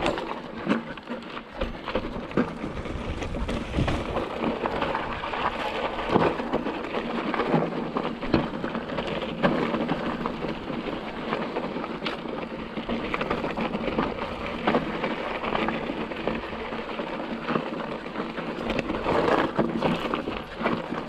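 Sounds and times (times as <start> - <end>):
bike tyres crunching over rock: 0.0 - 21.0
wheels knocking on rocks: 0.0 - 21.0.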